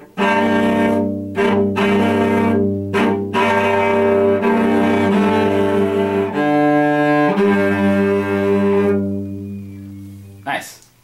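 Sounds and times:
cello played with bow: 0:00.0 - 0:10.5.

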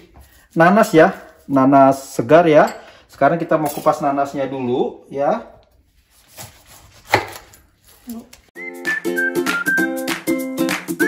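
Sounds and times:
background music: 0:08.6 - 0:11.0.

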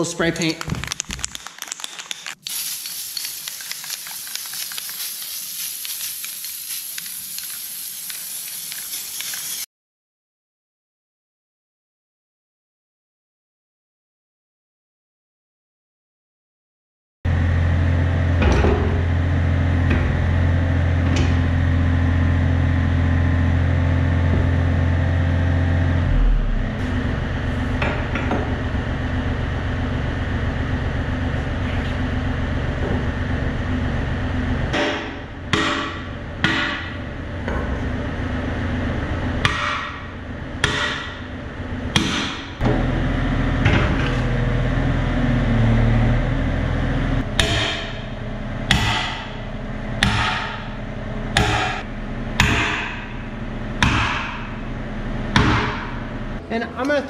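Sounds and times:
sledgehammer striking steel: 0:34.8 - 0:37.0, 0:39.4 - 0:41.3, 0:47.2 - 0:50.8, 0:51.4 - 0:51.8, 0:52.4 - 0:53.2.

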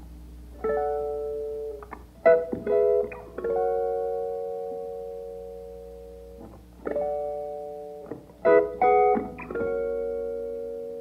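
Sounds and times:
guitar chord ringing: 0:00.0 - 0:11.0.

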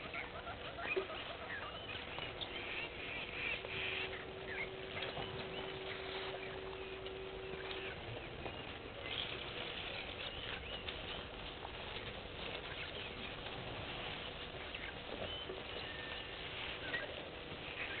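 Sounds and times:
soft patter and clicks: 0:00.0 - 0:18.0
steady faint hiss: 0:00.0 - 0:18.0.

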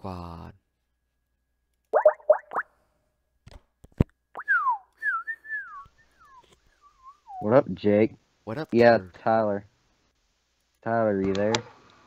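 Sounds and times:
wavering whistle-like tone: 0:04.4 - 0:07.5.

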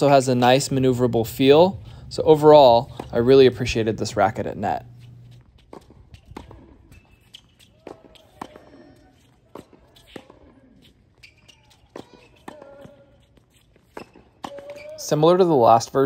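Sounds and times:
tennis balls struck with racquets: 0:00.4 - 0:15.8.

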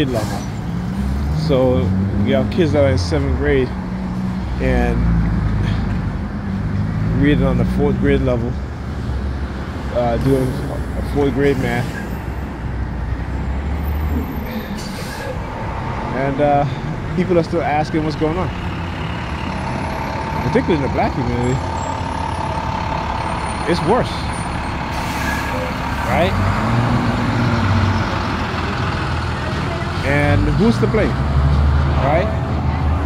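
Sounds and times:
traffic engine rumble: 0:00.0 - 0:33.0.

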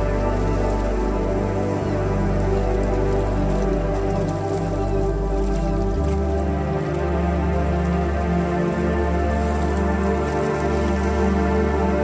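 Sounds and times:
deep bass drone: 0:00.0 - 0:12.0
rain drops: 0:00.0 - 0:12.0
synth pad chords: 0:00.0 - 0:12.0.

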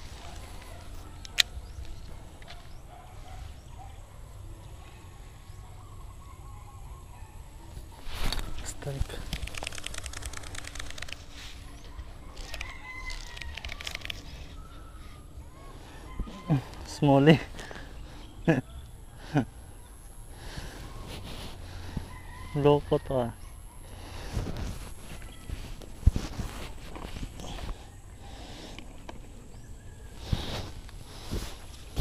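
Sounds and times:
rubbing and handling noise: 0:07.7 - 0:14.9, 0:24.1 - 0:27.9, 0:30.1 - 0:32.0
rooster crowing: 0:12.4 - 0:14.2, 0:15.7 - 0:17.0, 0:21.7 - 0:23.4
footsteps on grass: 0:24.2 - 0:27.9, 0:30.2 - 0:32.0.

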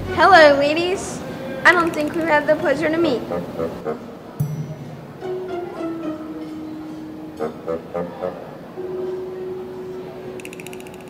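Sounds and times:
fast ratchet-like clicks: 0:01.7 - 0:02.4, 0:10.4 - 0:11.0
steady held tone: 0:04.4 - 0:07.2.

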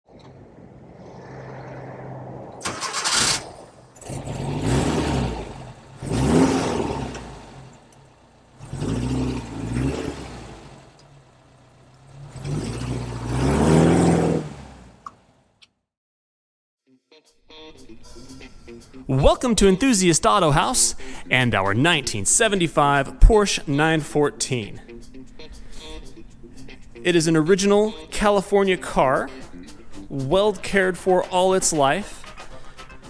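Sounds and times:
car engine idling and revving: 0:00.1 - 0:15.8, 0:24.9 - 0:27.0.

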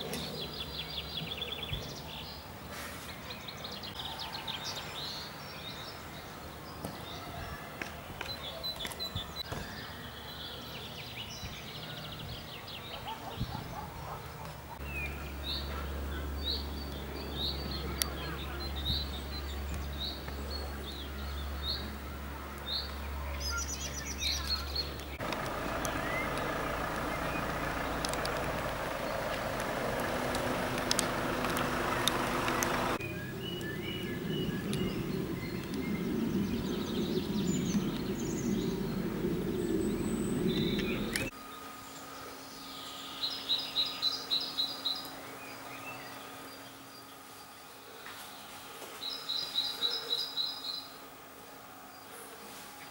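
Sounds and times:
small birds chirping: 0:00.0 - 0:51.2
low hum: 0:15.1 - 0:48.8.

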